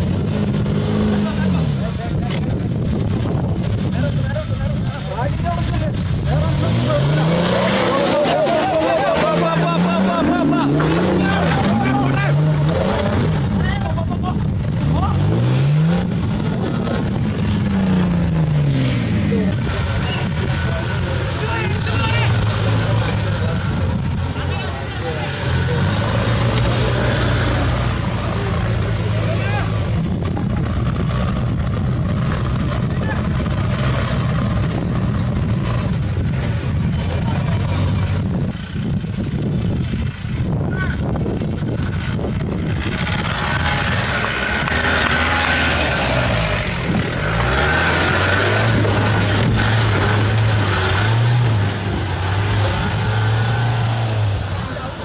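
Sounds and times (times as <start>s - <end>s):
crowd chatter: 0.0s - 55.0s
off-road engine revving: 0.0s - 55.0s.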